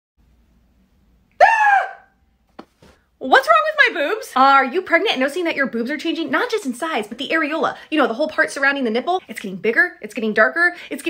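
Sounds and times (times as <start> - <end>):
woman exclaiming in surprise: 1.4 - 2.1.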